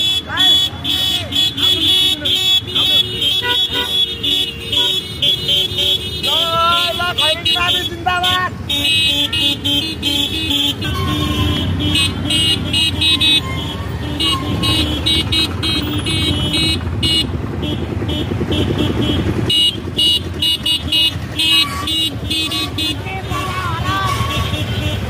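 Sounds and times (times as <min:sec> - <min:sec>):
motorcycle engines rumbling: 0:00.0 - 0:25.0.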